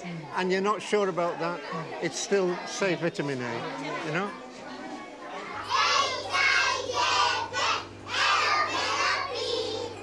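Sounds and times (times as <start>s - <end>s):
steady low hum: 5.1s - 10.0s
children calling out in chorus: 5.6s - 10.0s.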